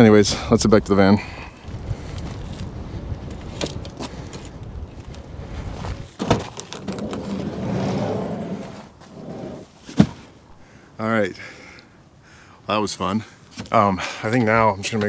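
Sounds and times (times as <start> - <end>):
sliding door rolling rush: 6.7 - 9.6.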